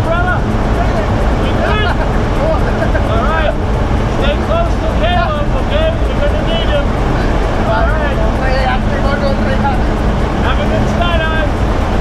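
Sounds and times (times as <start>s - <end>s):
person speaking: 0.0s - 11.7s
plane engine droning in cabin: 0.0s - 12.0s.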